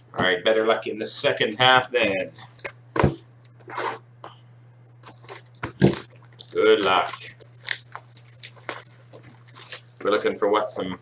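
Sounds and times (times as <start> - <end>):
steady low hum: 0.0 - 11.0
plastic shrink-wrap crinkling: 5.0 - 10.1.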